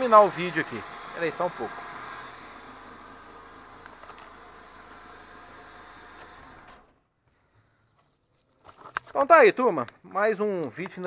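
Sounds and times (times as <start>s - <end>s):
car engine idling: 0.0s - 7.0s.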